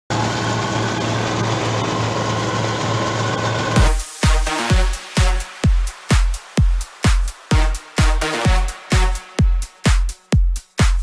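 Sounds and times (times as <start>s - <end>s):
combine harvester engine hum: 0.1s - 3.8s
electronic dance music: 0.8s - 11.0s.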